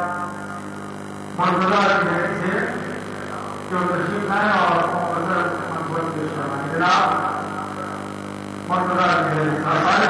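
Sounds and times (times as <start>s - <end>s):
electrical mains hum: 0.0s - 10.0s
man talking: 1.4s - 8.0s, 8.7s - 10.0s.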